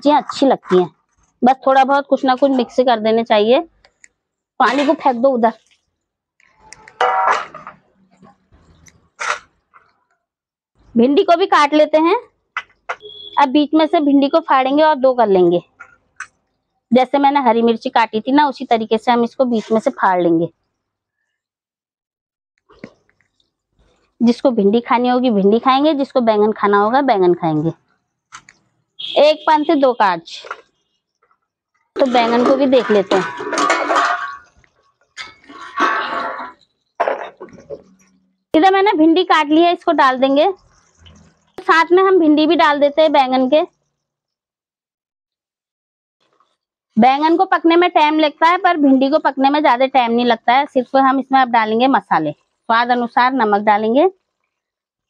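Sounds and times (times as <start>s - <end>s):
knife scraping steel plate: 35.2s - 36.6s.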